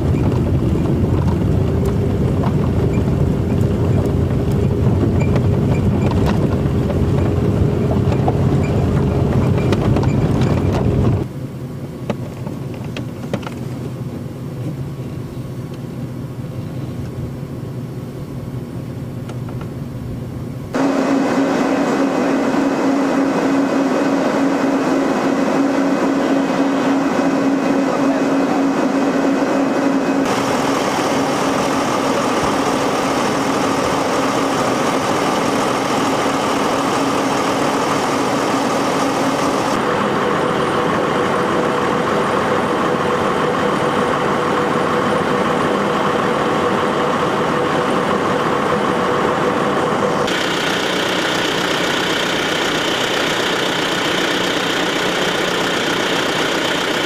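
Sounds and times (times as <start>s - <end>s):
heavy engine running: 0.0s - 15.1s, 20.7s - 57.0s
bulldozer diesel engine idling: 30.3s - 40.1s, 50.3s - 57.0s.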